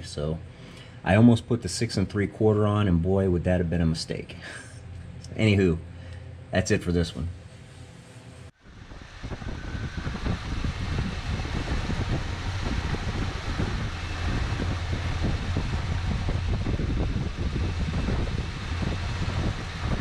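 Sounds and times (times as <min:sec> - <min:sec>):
car engine idling: 0:08.6 - 0:20.0.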